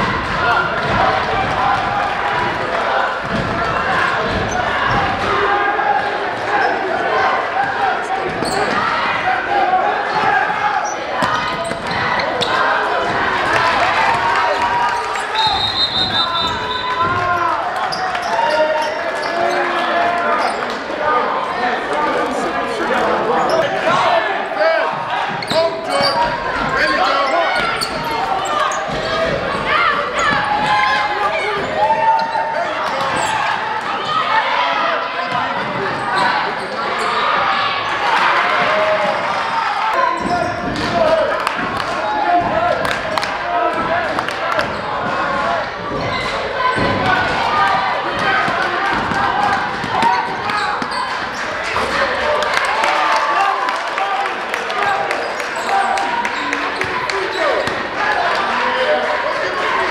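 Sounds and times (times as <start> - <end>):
voices shouting in a hall: 0.0 - 59.9.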